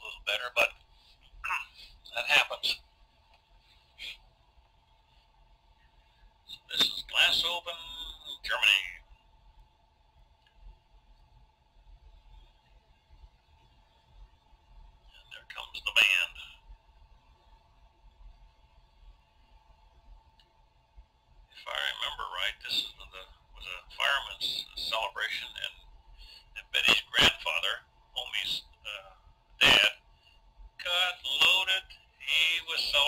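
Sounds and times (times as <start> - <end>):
man's voice: 0.0 - 0.7, 1.4 - 2.8, 6.5 - 9.0, 15.3 - 16.5, 21.6 - 25.7, 26.5 - 30.0, 30.8 - 33.0
faint steady hum: 0.0 - 33.0.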